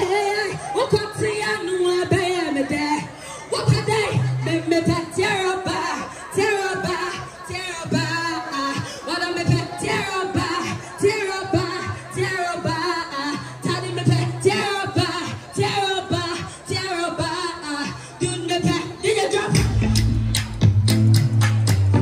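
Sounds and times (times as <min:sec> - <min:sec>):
woman singing into microphone: 0:00.0 - 0:19.8
backing track with deep bass: 0:00.0 - 0:22.0.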